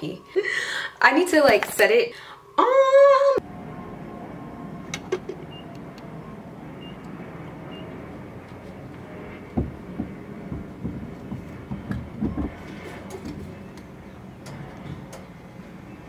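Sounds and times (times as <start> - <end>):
low hum: 2.3 - 16.0
soft irregular knocks: 9.6 - 12.7.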